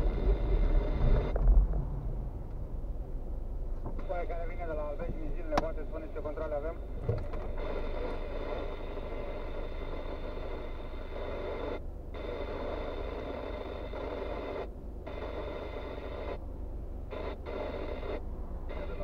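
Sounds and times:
car idling hum: 0.0 - 19.0.

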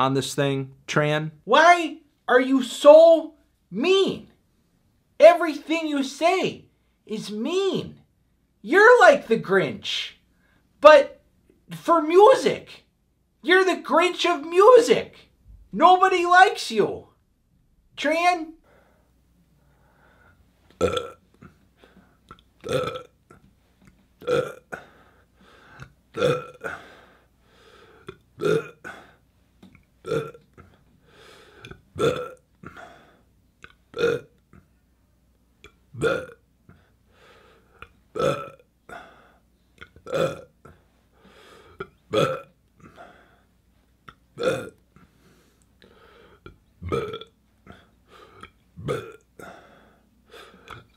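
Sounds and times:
man belching: 20.8 - 21.6, 22.3 - 23.4, 24.2 - 24.9, 25.8 - 26.9, 28.0 - 29.1, 30.0 - 30.8, 31.6 - 32.9, 33.6 - 34.6, 35.6 - 36.4, 38.2 - 39.0, 39.8 - 40.8, 41.8 - 43.0, 44.1 - 44.8, 46.4 - 49.6
man burping: 20.8 - 21.6, 22.3 - 23.4, 24.2 - 25.0, 25.8 - 27.0, 28.0 - 29.2, 30.0 - 30.8, 31.6 - 33.0, 33.6 - 34.6, 35.6 - 36.4, 37.8 - 39.2, 39.8 - 40.8, 41.7 - 43.2, 44.1 - 44.8, 46.4 - 49.8
breathy sounds: 26.6 - 28.2, 38.9 - 39.5, 40.7 - 41.9, 42.8 - 43.6, 44.9 - 46.6, 47.6 - 48.6, 49.4 - 50.9.

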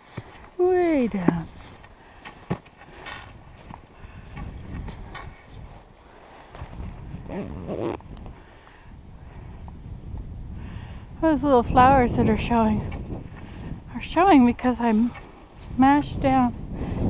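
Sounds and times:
snowshoe steps crunching snow: 0.0 - 8.0.

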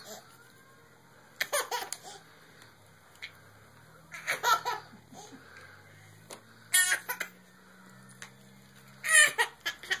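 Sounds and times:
baby laughing: 1.4 - 2.2, 4.1 - 5.4, 6.7 - 7.4, 9.0 - 10.0.

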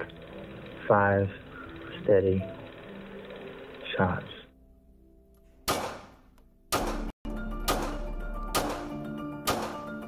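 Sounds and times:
music of sustained notes: 7.3 - 10.0.

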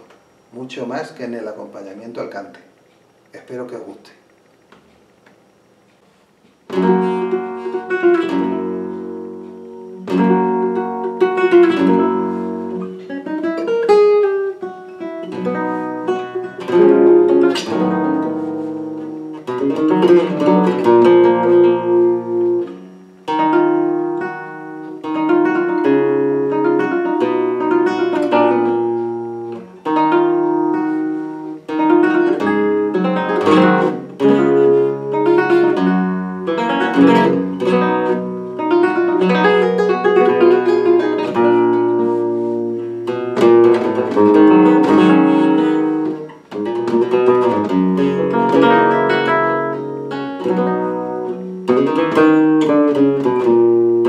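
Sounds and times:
flamenco guitar: 6.0 - 54.0.

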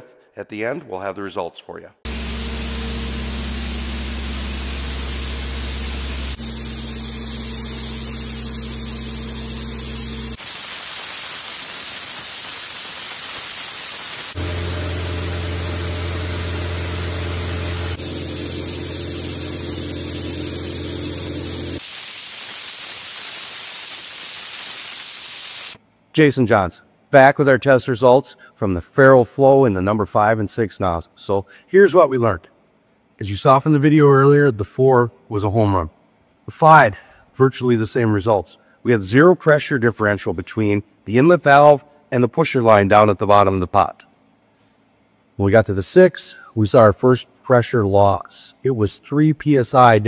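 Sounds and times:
sandblasting nozzle hissing: 2.1 - 25.8.

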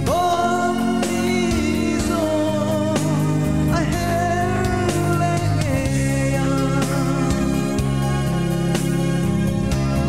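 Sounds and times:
person singing melody: 0.0 - 8.6
instrumental accompaniment: 0.0 - 10.0.

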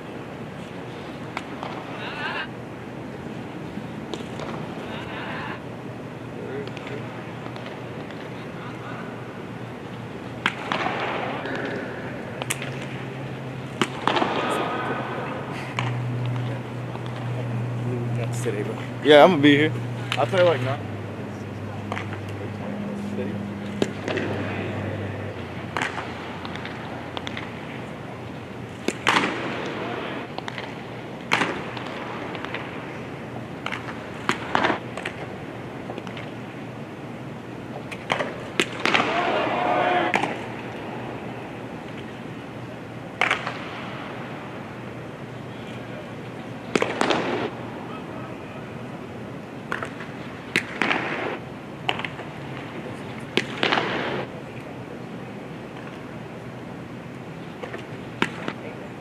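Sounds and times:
stadium crowd murmur: 0.0 - 59.0.

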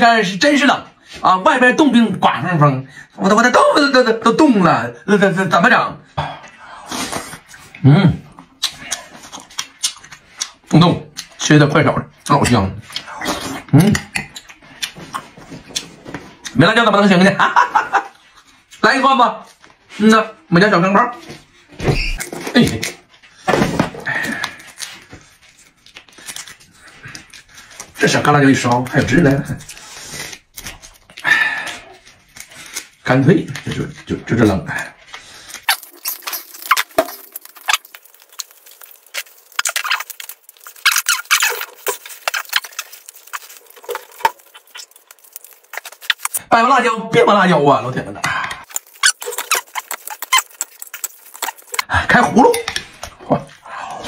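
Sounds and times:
dried chili peppers crumbling: 35.2 - 46.4, 48.6 - 51.9.

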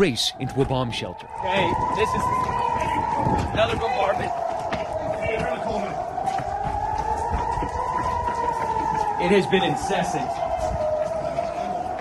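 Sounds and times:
air raid siren wailing: 0.0 - 12.0.

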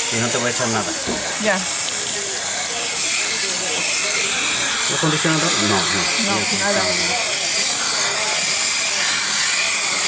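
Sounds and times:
water sprayer hissing: 0.0 - 10.0.

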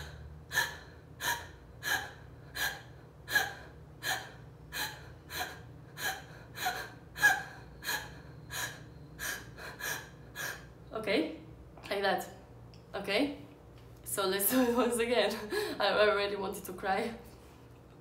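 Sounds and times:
woman gasping: 0.0 - 10.8.

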